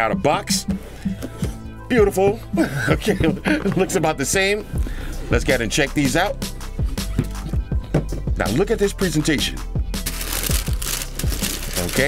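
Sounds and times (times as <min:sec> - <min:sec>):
background music: 0:00.0 - 0:12.0
tissue paper crinkling: 0:10.0 - 0:12.0.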